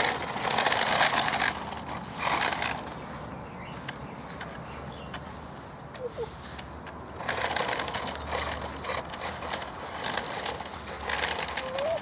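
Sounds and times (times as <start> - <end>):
toy car electric motor: 0.0 - 2.9, 7.2 - 12.0
wheels grinding on concrete: 0.0 - 5.2, 6.5 - 12.0.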